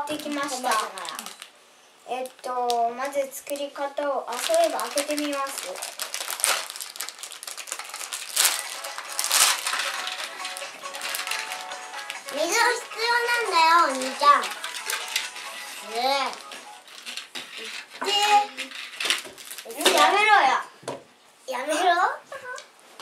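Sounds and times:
plastic packet tearing and crinkling: 0.0 - 1.5, 4.3 - 20.2
child's sing-song voice: 11.2 - 16.4.

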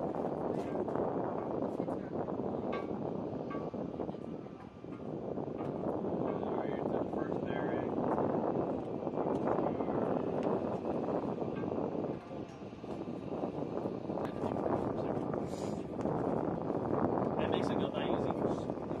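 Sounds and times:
rushing outdoor background noise: 0.0 - 19.0.

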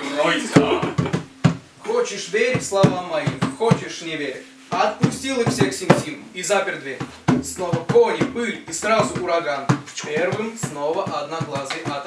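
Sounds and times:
indistinct voices: 0.0 - 12.0
sharp knocks: 0.6 - 1.7, 4.7 - 6.2, 7.0 - 12.0.

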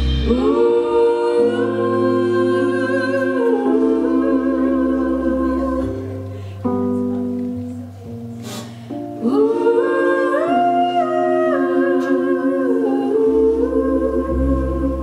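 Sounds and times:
live band playing slow chords: 0.0 - 15.0
voices singing in harmony: 0.1 - 6.6, 9.1 - 15.0
brief hiss: 8.4 - 8.9.

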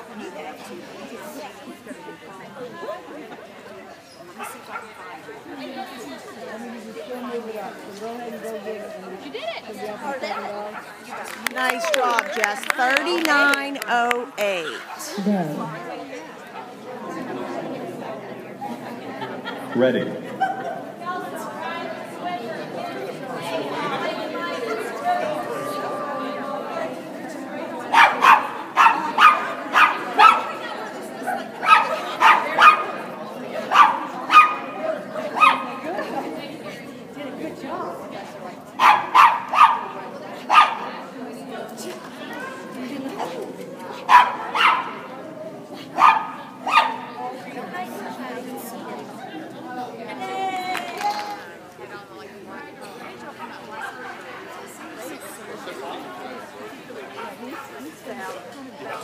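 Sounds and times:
background chatter: 0.0 - 59.0
dog barking: 27.9 - 30.5, 31.6 - 33.0, 33.7 - 34.7, 35.4 - 35.6, 38.8 - 39.9, 40.5 - 40.8, 44.1 - 45.1, 46.0 - 47.1.

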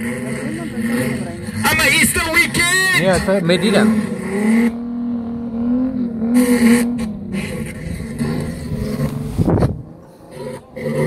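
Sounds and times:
drag racing car engine: 0.0 - 11.0.

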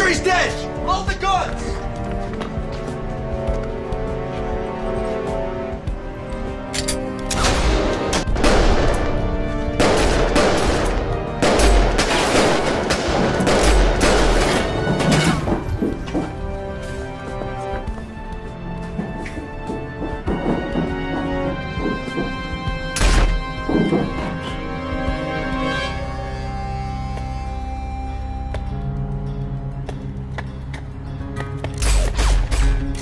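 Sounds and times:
action film music: 0.0 - 33.0
gunfire volleys: 9.8 - 15.4.

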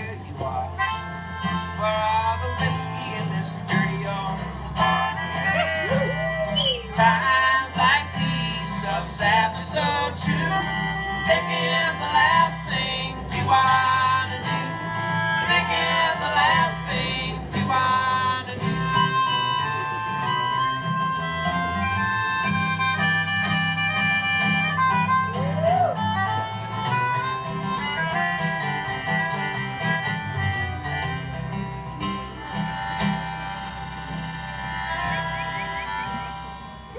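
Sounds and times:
held melody notes: 0.0 - 36.9
strummed acoustic guitar: 0.0 - 36.9
upright bass line: 0.0 - 36.9.

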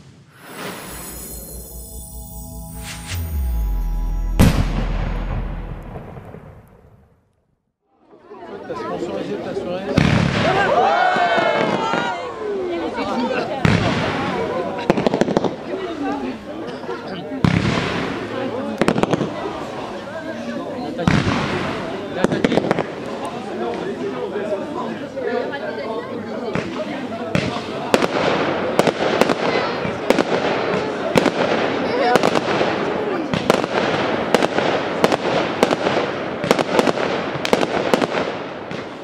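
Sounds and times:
deep rumbling boom: 2.7 - 7.2
sharp firework cracks: 33.4 - 39.0.

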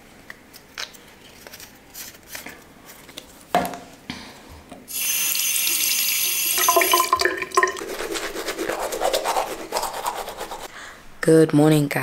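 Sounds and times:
water running from tap: 4.9 - 8.1
toothbrush scrubbing teeth: 7.8 - 10.7.

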